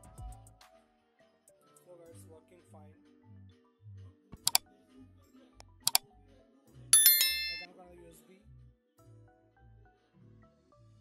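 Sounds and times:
bright bell-like ding: 7.0s - 7.7s.

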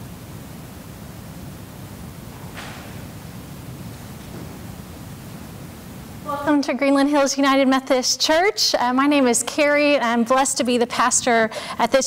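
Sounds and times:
microphone hiss: 0.0s - 12.0s
woman speaking: 6.2s - 12.0s.

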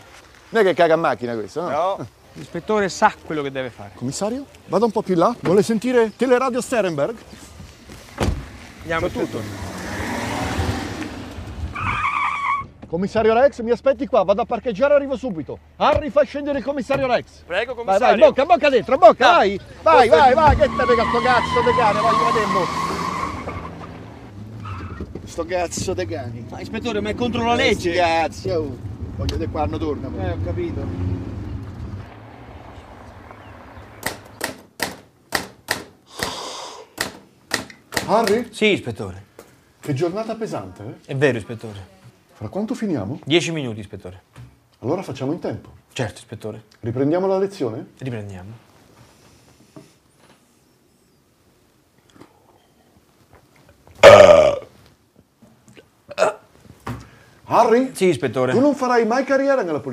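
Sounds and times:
tyre road noise: 0.0s - 36.2s, 53.0s - 55.6s
car engine driving off: 8.4s - 12.0s
tyres squealing: 11.7s - 12.8s, 19.8s - 26.0s.

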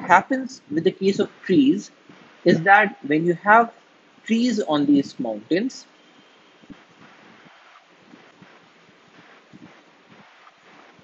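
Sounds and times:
room noise hiss: 0.0s - 11.0s.

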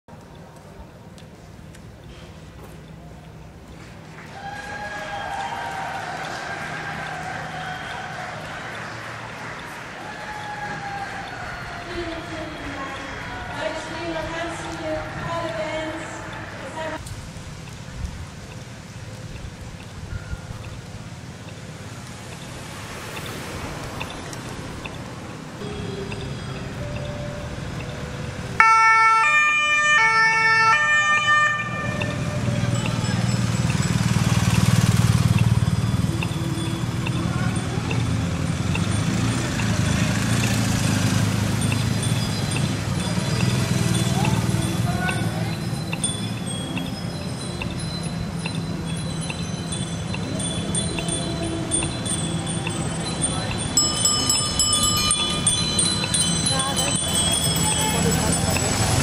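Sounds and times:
low engine rumble: 0.1s - 28.7s, 31.7s - 59.0s
bicycle bells ringing: 5.1s - 17.0s, 20.1s - 29.1s, 31.5s - 59.0s
police two-tone siren: 25.6s - 58.8s.

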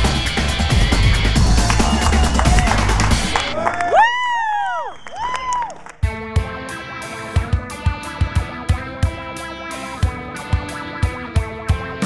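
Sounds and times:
guitar-led music with drum beat: 0.0s - 3.4s, 6.0s - 12.0s.

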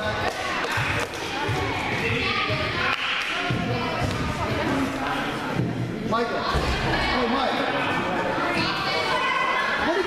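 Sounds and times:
spectators' voices echoing: 0.0s - 10.0s.

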